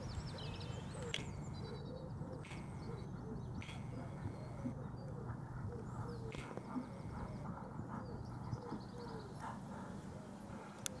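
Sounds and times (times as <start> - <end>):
birds singing: 0.0 - 11.0.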